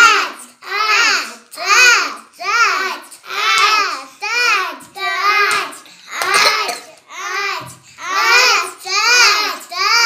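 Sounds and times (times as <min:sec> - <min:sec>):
children chanting: 0:00.0 - 0:10.0.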